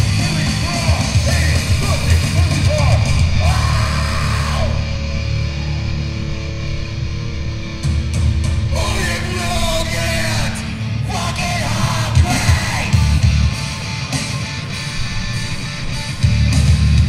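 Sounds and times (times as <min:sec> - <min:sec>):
shouted vocals: 0:00.0 - 0:06.2, 0:08.7 - 0:13.9
punk band playing live: 0:00.0 - 0:06.4, 0:07.0 - 0:17.0.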